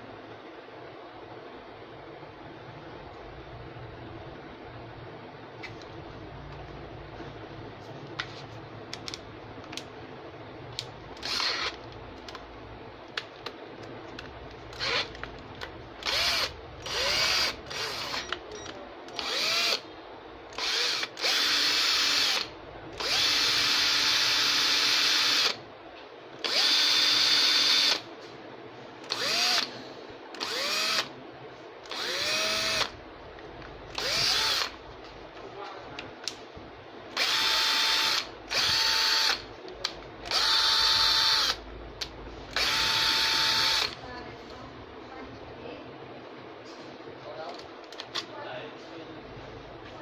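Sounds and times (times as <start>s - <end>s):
cordless drill motor whining: 11.2s - 11.8s, 14.7s - 15.2s, 16.0s - 19.8s, 20.5s - 25.6s, 26.4s - 28.0s, 29.0s - 29.8s, 30.4s - 31.1s, 31.8s - 32.9s, 33.9s - 34.8s, 37.1s - 39.4s, 40.3s - 41.6s, 42.5s - 44.0s.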